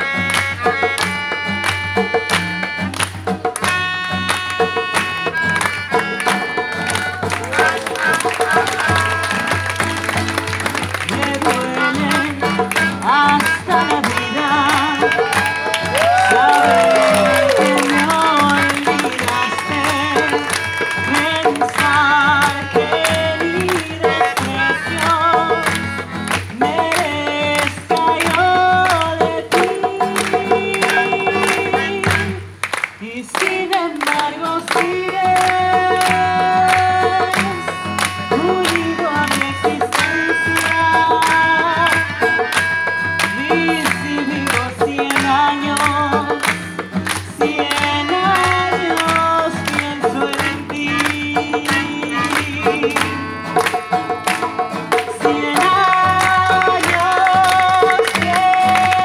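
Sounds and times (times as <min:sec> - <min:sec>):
melodica sustained notes: 0:00.0 - 0:10.6, 0:11.2 - 0:26.8, 0:37.3 - 0:44.6
band accompaniment: 0:00.0 - 0:33.2, 0:34.0 - 0:59.0
strummed acoustic guitar: 0:00.0 - 0:59.0
people singing and calling out: 0:11.0 - 0:59.0
long falling vocal cry: 0:15.4 - 0:18.0.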